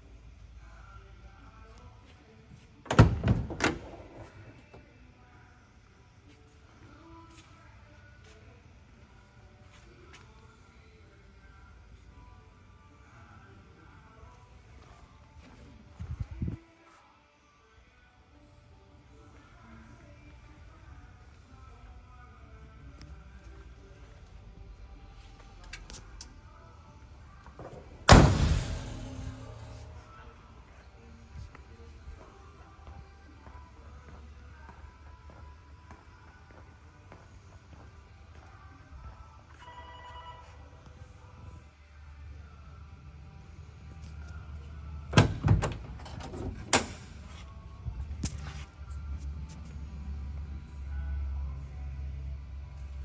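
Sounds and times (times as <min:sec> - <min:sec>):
faint background music: 0:00.0 - 0:53.0
car door slamming shut: 0:28.1 - 0:29.5.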